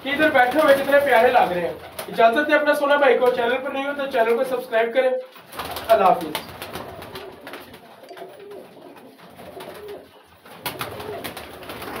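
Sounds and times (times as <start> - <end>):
wing flaps: 5.4 - 12.0
pigeons cooing: 6.4 - 12.0.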